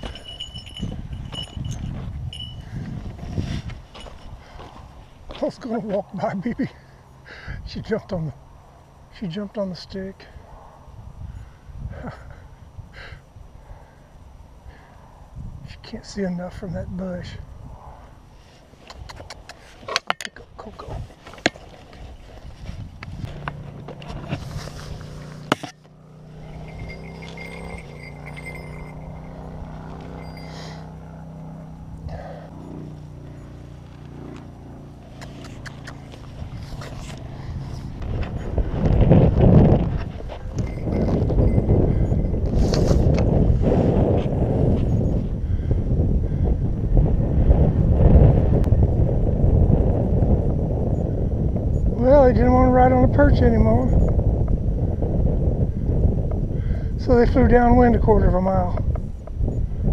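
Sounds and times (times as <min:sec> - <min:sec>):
wind buffeting microphone: 0:00.0 - 0:06.8, 0:10.0 - 0:13.9, 0:14.5 - 0:59.9.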